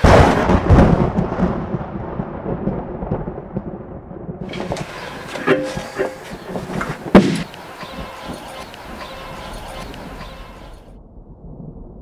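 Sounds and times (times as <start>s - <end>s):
thunderclap rumbling: 0.0s - 12.0s.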